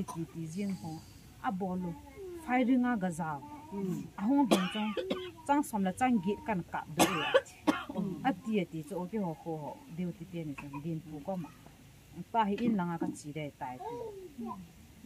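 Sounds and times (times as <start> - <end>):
rough bursts of voice: 0.0 - 2.6
woman speaking animatedly: 0.0 - 11.6, 12.2 - 14.1.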